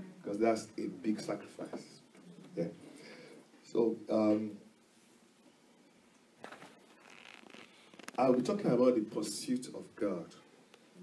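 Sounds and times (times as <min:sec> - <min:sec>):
light scratchy noise: 0:00.0 - 0:11.0
faint rustle: 0:06.4 - 0:08.5.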